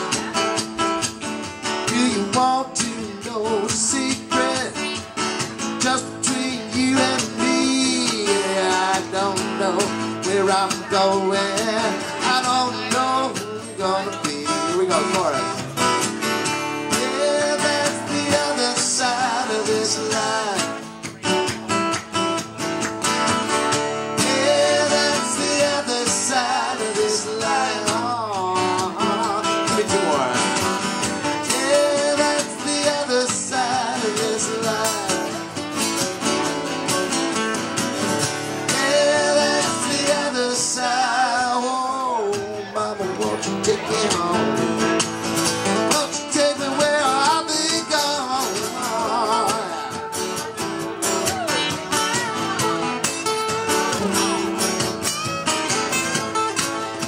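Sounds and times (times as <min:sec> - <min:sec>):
acoustic guitars strumming: 0:00.0 - 0:57.0
person singing: 0:01.9 - 0:05.1, 0:05.7 - 0:15.4, 0:16.9 - 0:21.2, 0:24.2 - 0:30.4, 0:31.3 - 0:37.5, 0:38.5 - 0:44.8, 0:45.8 - 0:52.9.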